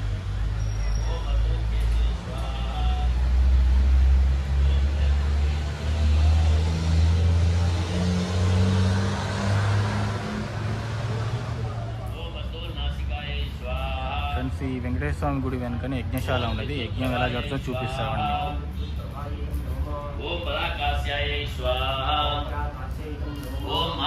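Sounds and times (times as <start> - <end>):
faint voices: 0.0 - 24.0
vehicle engine humming: 0.0 - 24.0.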